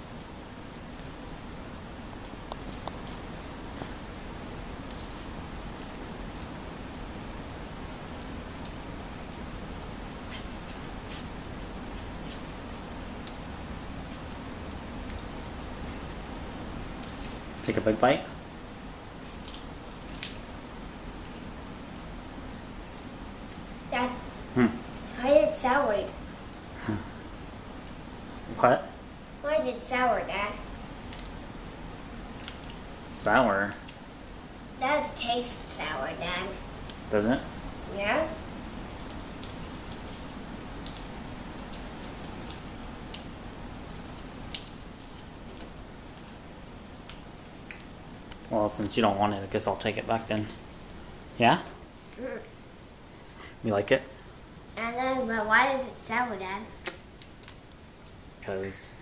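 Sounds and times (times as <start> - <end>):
low steady room noise: 0.0 - 59.0
faint crackles of frozen ice pop: 44.5 - 46.4.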